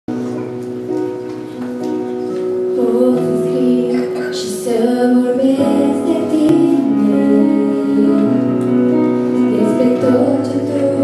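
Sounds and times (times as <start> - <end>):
electronic keyboard chords: 0.2 - 11.0.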